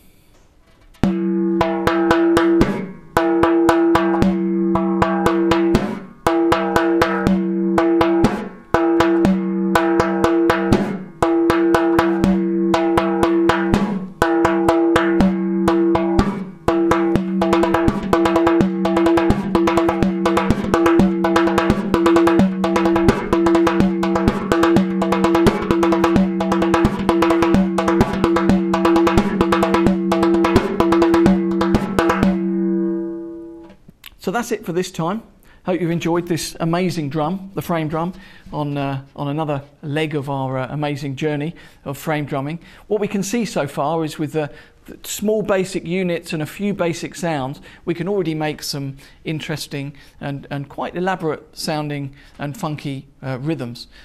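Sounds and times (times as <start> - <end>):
frame drum played by hand: 1.0 - 33.7.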